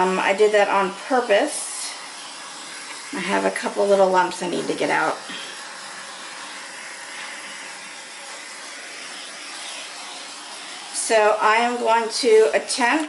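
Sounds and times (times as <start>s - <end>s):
torch hissing: 0.0s - 13.0s.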